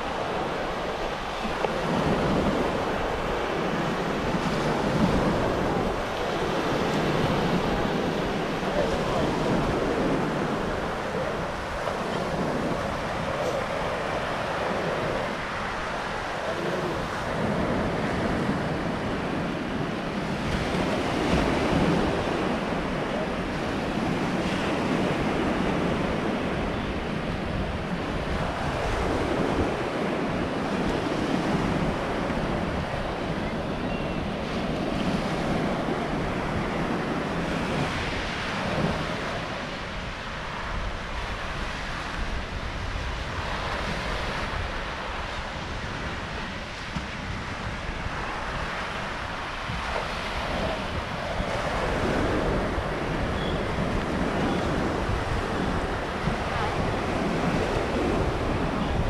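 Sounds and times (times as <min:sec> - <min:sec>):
surf washing up beach: 0:00.0 - 0:59.0
wind buffeting microphone: 0:00.0 - 0:59.0.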